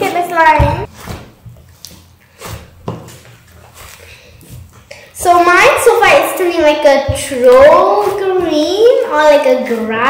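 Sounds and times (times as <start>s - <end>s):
slime being kneaded by hand: 0.0s - 10.0s.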